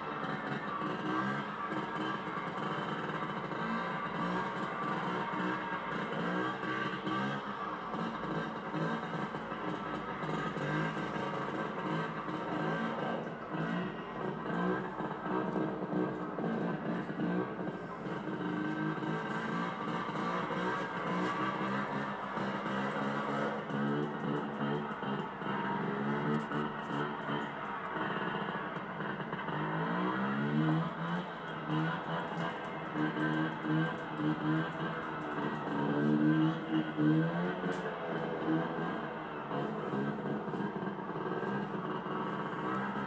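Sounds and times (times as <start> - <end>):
scooter engine running: 0.0 - 43.0.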